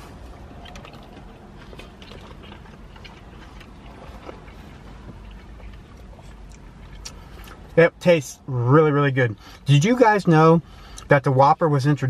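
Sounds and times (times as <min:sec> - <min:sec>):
person chewing: 0:00.0 - 0:07.8.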